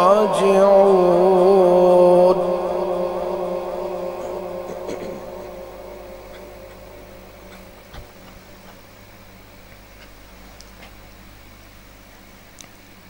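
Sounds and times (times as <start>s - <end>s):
recitation held note with echo: 0.0s - 9.7s
faint low hum: 0.0s - 13.0s.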